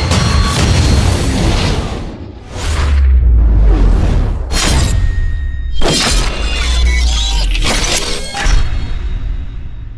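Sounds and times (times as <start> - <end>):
trailer music: 0.0 - 9.9.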